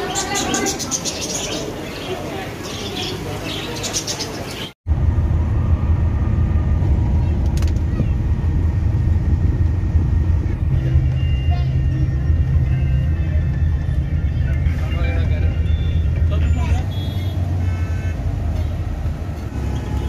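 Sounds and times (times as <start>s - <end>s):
bus engine and road rumble: 0.0s - 20.0s.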